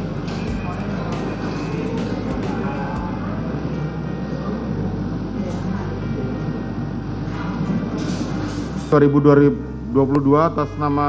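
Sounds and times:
low hum: 0.0s - 11.0s
murmur of voices: 0.0s - 11.0s.

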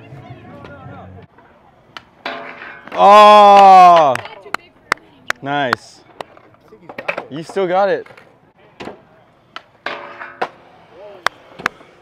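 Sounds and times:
skateboard clacking on concrete: 1.4s - 12.0s.

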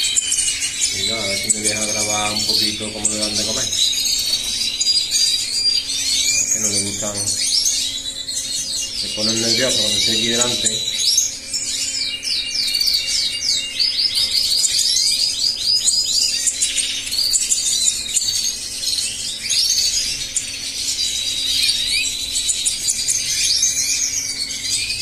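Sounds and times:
finches chirping and twittering: 0.0s - 25.0s.

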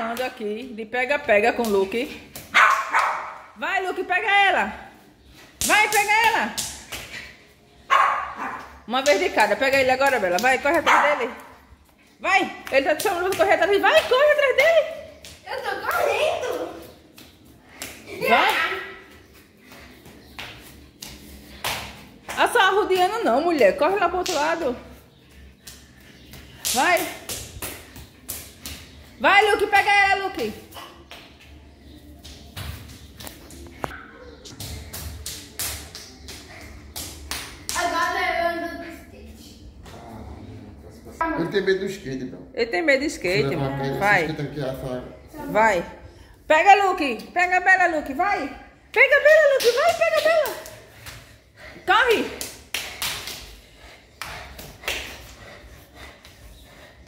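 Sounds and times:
bare feet running on tiles: 0.0s - 38.1s, 47.5s - 57.0s
small dog barking: 2.6s - 3.4s, 7.9s - 8.7s, 10.9s - 11.2s.

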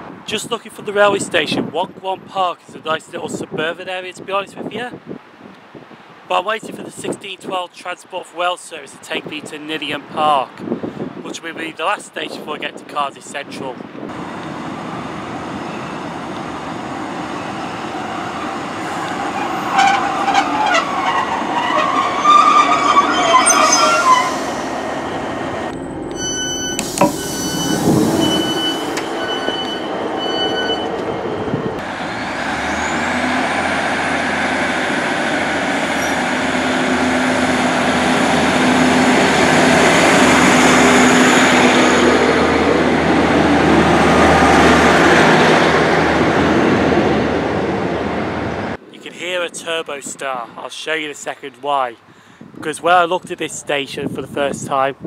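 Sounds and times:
diesel engines revving with whine: 14.1s - 48.8s
train brakes squealing: 17.4s - 25.2s, 26.1s - 31.3s, 35.8s - 36.3s
short beeps: 25.8s - 31.2s.

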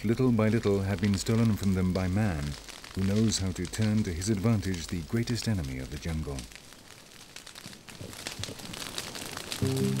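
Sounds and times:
burning grass crackling: 0.0s - 10.0s.

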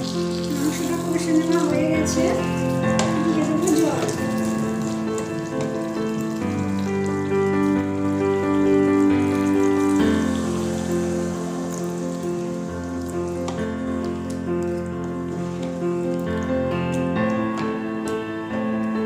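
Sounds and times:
curry sizzling and bubbling in pan: 0.0s - 17.7s
wooden spatula stirring: 0.0s - 17.8s
background music of held chords: 0.0s - 19.0s.

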